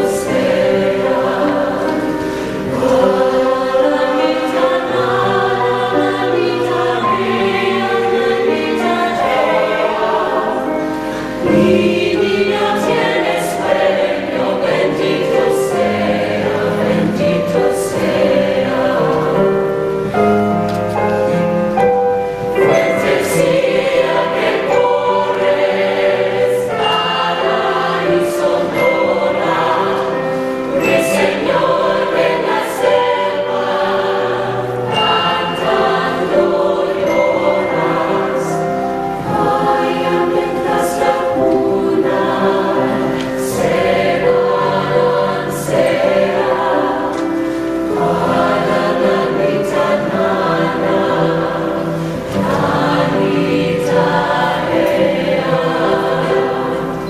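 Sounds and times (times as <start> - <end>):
mixed choir singing: 0.0 - 57.0
stage piano: 0.0 - 57.0.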